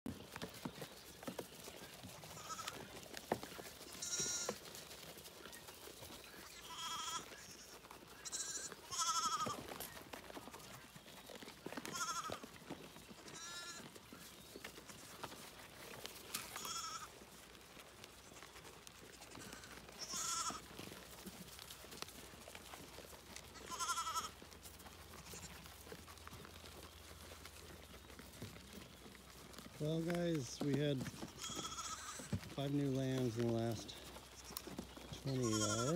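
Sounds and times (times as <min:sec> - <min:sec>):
lambs bleating: 0:02.3 - 0:02.9, 0:03.9 - 0:04.6, 0:06.4 - 0:09.8, 0:11.8 - 0:12.5, 0:13.2 - 0:14.0, 0:16.3 - 0:17.1, 0:19.3 - 0:20.9, 0:23.4 - 0:24.4, 0:31.2 - 0:32.4, 0:34.1 - 0:35.9.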